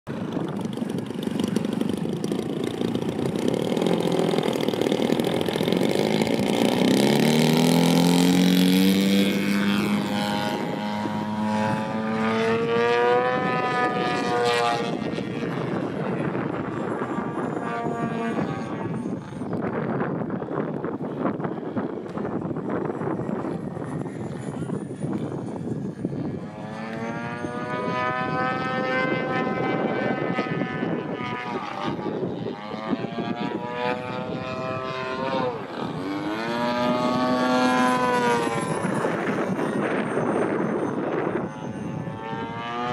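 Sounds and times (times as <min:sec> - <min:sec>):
model plane motor and propeller: 0:00.1 - 0:42.9.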